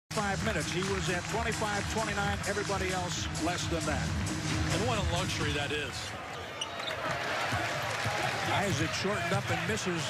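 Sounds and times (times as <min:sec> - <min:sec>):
arena crowd noise: 0:00.1 - 0:10.0.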